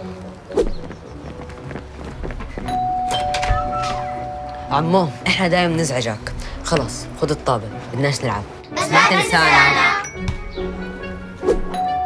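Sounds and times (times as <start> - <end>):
doorbell chime ding-dong: 2.7 - 4.7.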